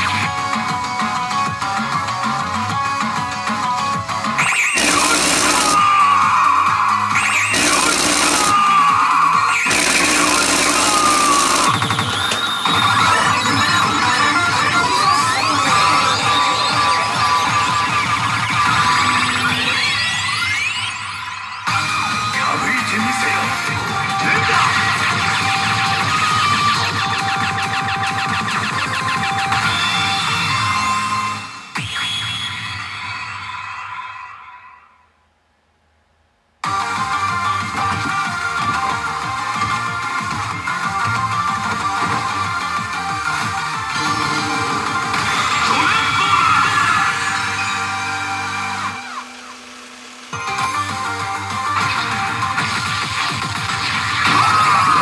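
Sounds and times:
pachinko electronic music: 0.0 - 33.5, 36.6 - 55.0
loud electronic blasts: 4.4 - 21.0.

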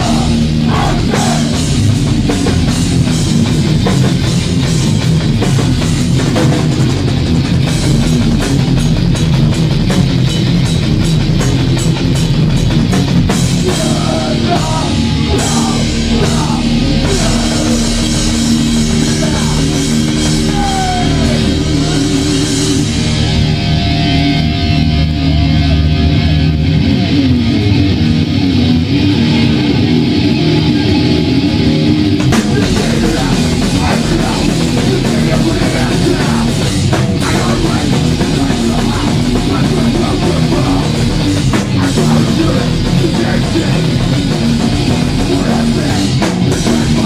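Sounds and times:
fast busy drumming: 0.0 - 23.9, 32.1 - 47.0
punk band playing live: 0.0 - 47.0
ringing guitar chords: 0.0 - 47.0.

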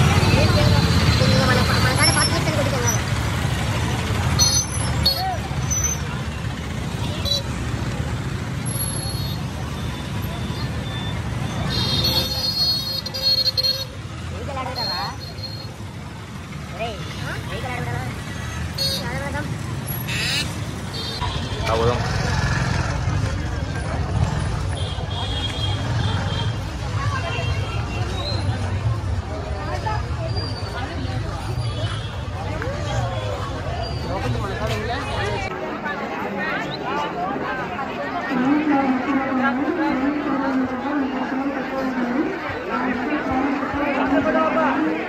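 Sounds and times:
crowd voices: 0.0 - 45.0
motor traffic rumble: 0.0 - 45.0.

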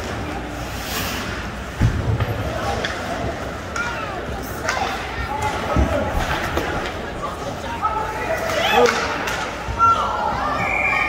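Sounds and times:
noisy hall background: 0.0 - 11.0.

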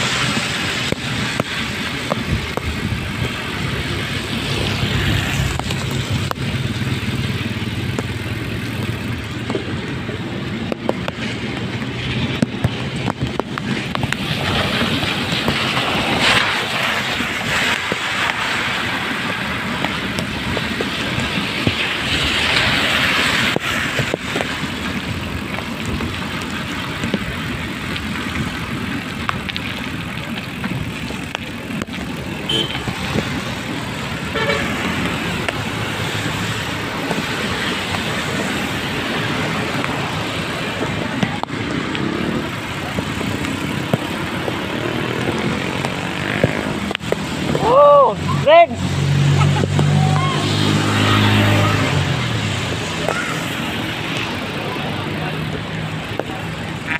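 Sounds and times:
rain and tyres on wet road: 0.0 - 56.9
car horn toots: 32.4 - 32.9, 34.3 - 34.8.

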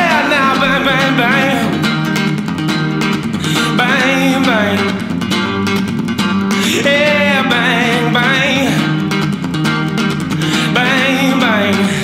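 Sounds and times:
electric guitar strummed: 0.0 - 12.0
man singing gliding runs: 6.6 - 8.8.

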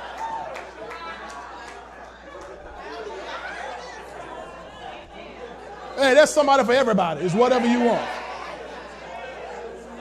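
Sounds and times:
congregation chatter: 0.0 - 10.0.

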